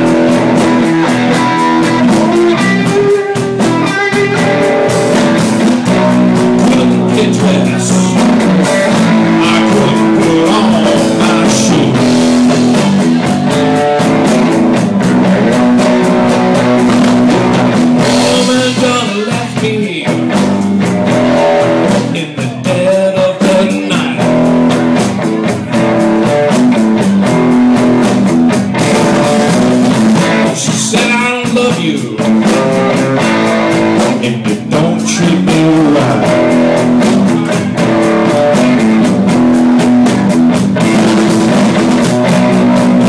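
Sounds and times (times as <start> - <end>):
drum kit: 0.0 - 43.0
electric guitar: 0.0 - 43.0.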